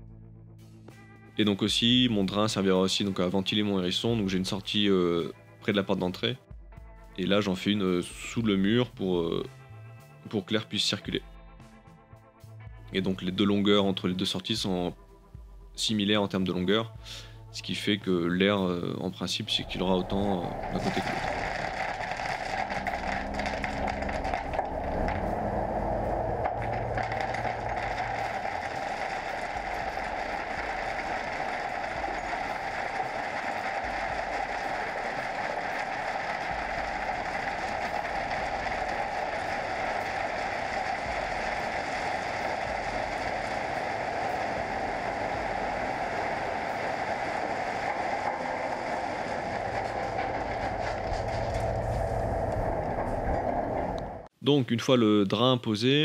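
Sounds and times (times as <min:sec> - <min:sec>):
lorry engine rumbling: 0:19.4 - 0:54.3
pebbles rattling off lorry bed: 0:19.5 - 0:54.0.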